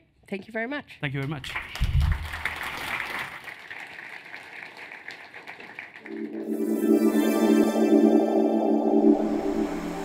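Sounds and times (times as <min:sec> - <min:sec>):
audience applause: 0:01.5 - 0:06.6
music with held chords: 0:06.1 - 0:10.0.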